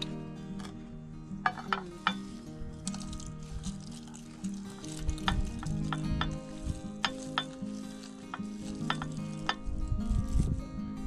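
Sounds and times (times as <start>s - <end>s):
dried chili pieces rattling into cup: 1.4s - 10.4s.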